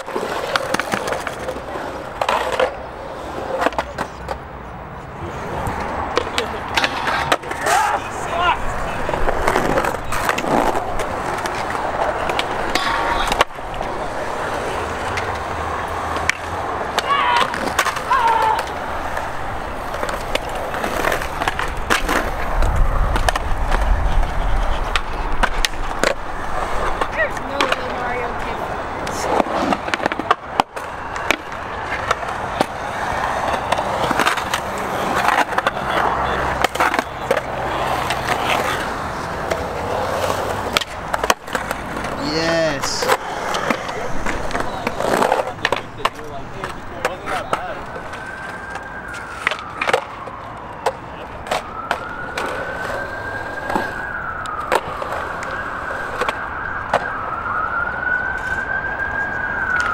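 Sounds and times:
skateboard wheels rolling on concrete: 0:00.0 - 0:59.9
skateboard pops: 0:16.1 - 0:28.0, 0:43.0 - 0:57.2.

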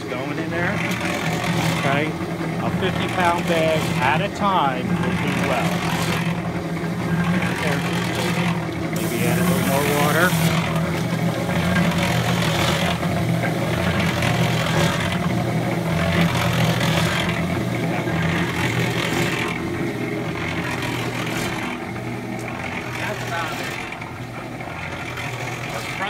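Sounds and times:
cement mixer motor hum: 0:00.0 - 0:26.0
wet concrete tumbling in drum: 0:00.1 - 0:26.0.

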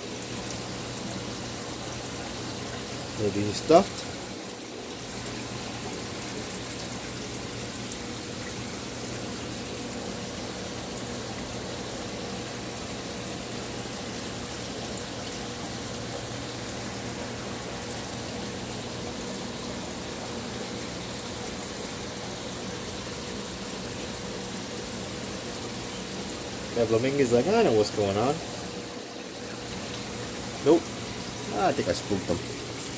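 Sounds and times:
aquarium pump hum: 0:00.0 - 0:32.9
circulating water rushing: 0:00.0 - 0:32.9.

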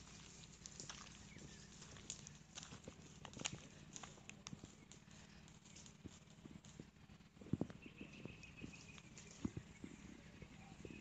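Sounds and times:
footsteps on ground: 0:00.0 - 0:11.0.

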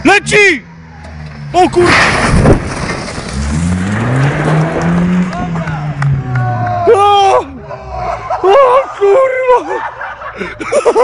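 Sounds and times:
car engine revving: 0:00.6 - 0:08.7
brick wall collapsing crash: 0:01.7 - 0:05.3.

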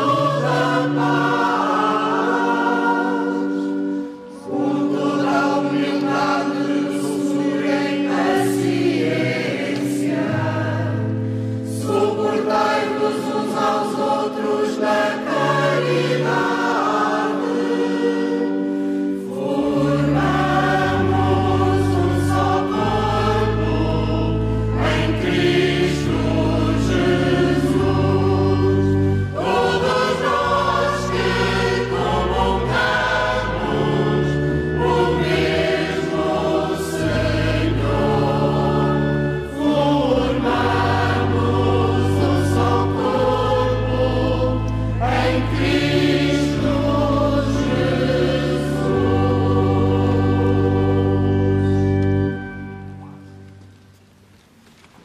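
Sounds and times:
choir singing a hymn: 0:00.0 - 0:53.4.

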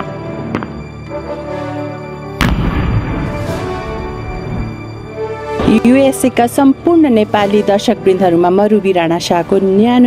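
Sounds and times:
background music: 0:00.0 - 0:10.0
firework shell bursting: 0:02.4 - 0:04.9
low rumble: 0:02.4 - 0:05.2.

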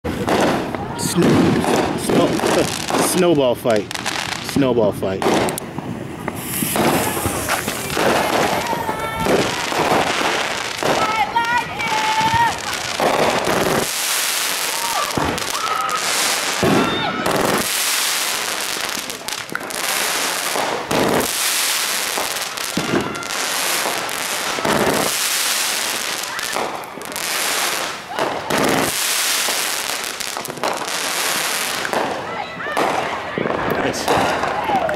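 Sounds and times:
fireworks bursting: 0:00.0 - 0:34.9
firework hiss: 0:00.2 - 0:32.2.

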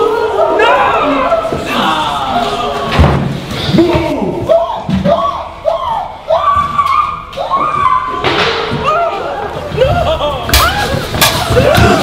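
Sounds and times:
scuffle: 0:06.3 - 0:12.0.

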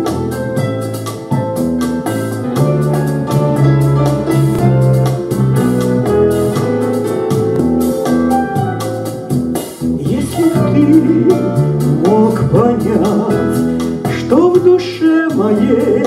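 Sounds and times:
instrumental backing track: 0:00.0 - 0:16.0.

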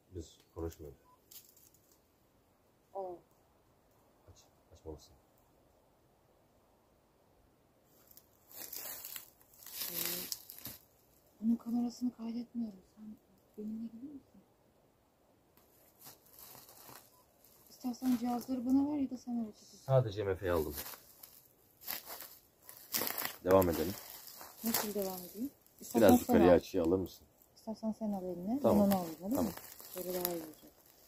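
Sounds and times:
footsteps crunching on pine needles: 0:07.9 - 0:11.0, 0:15.7 - 0:18.5, 0:20.5 - 0:26.6, 0:28.6 - 0:31.0.

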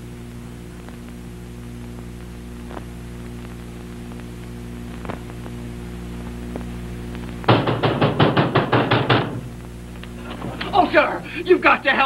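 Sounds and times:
low mains hum: 0:00.0 - 0:12.0
rapid knocking on wooden door: 0:07.5 - 0:09.5.

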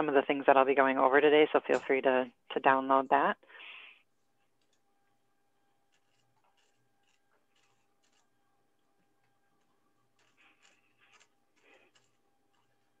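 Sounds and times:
rustles: 0:10.2 - 0:13.0.

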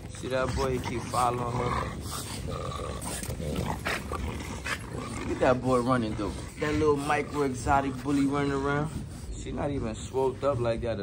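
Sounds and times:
dog noises: 0:00.0 - 0:11.0.

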